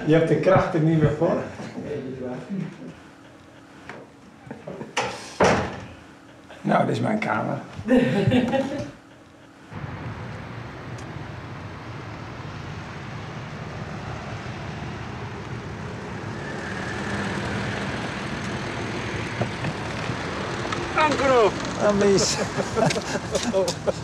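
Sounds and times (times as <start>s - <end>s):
outdoor hum: 0.0s - 24.0s
person speaking: 20.9s - 24.0s.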